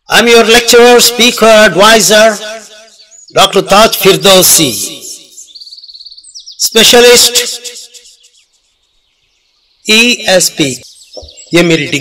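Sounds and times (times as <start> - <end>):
man speaking: 0.1 - 2.6, 3.3 - 5.3, 6.6 - 7.9, 9.9 - 10.8, 11.5 - 12.0.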